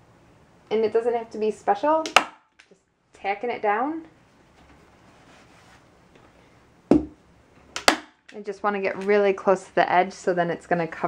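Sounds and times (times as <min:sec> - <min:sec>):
soft handling of tape: 0:04.5 - 0:06.5.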